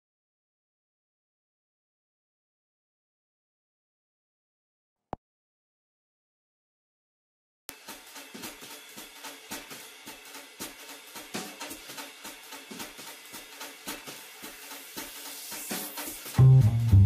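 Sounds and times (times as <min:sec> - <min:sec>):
jazz drum kit playing: 0:07.7 - 0:17.0.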